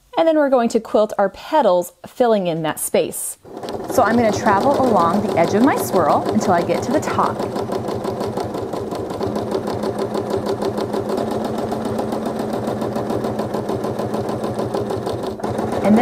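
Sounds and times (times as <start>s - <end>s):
quilting machine stitching: 3.4s - 16.0s.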